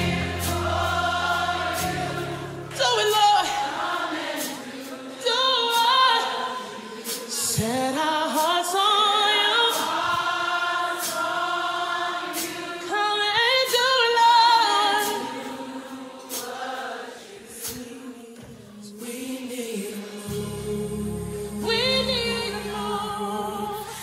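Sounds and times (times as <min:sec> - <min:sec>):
gospel choir singing: 0:00.0 - 0:24.0.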